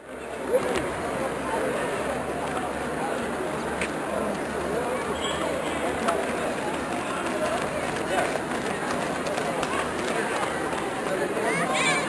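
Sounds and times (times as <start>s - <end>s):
runners' footfalls on track: 2.4s - 12.0s.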